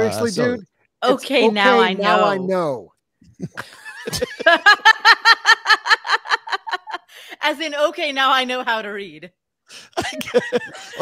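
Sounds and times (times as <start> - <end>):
person laughing hard: 3.4 - 7.0, 10.0 - 11.0.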